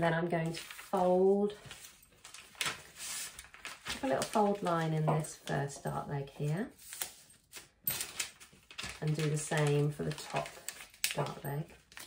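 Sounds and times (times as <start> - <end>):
paper rustling and folding: 0.4 - 12.0.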